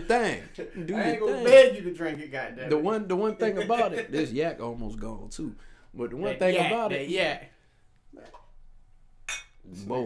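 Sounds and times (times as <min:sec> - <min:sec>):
bottle clinking against cup: 0:09.3 - 0:09.6.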